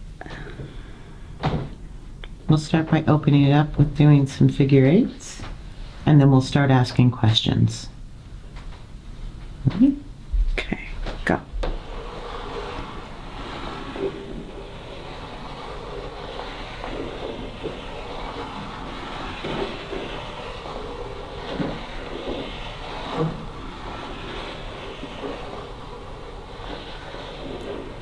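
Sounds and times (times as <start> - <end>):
planchette scraping on wooden board: 11.5 - 28.0.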